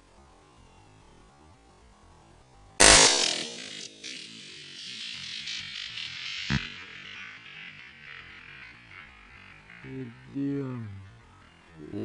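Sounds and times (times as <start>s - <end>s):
rifle shot: 2.8s - 4.2s
electronic background music: 2.8s - 10.2s.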